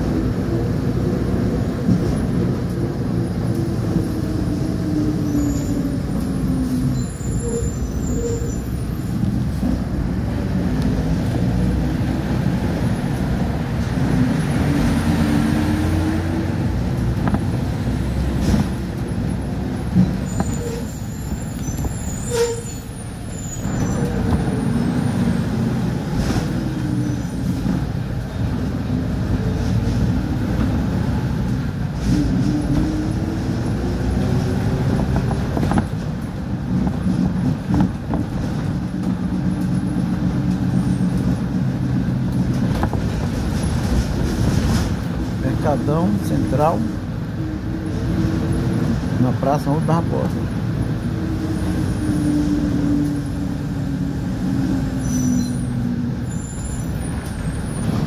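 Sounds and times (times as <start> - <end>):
bus engine and road rumble: 0.0 - 58.0
brake squeal: 5.1 - 9.4, 19.3 - 25.5, 54.7 - 58.0.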